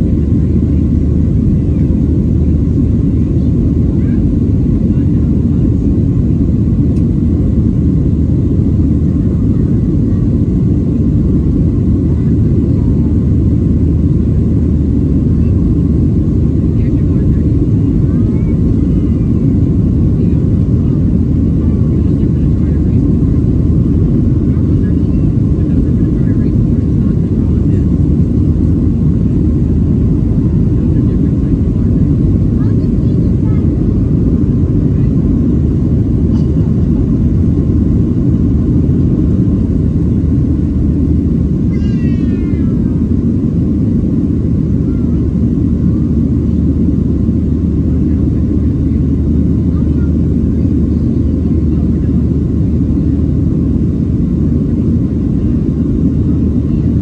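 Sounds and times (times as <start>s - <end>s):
airflow over fuselage: 0.0s - 57.0s
airplane engines rumbling: 0.0s - 57.0s.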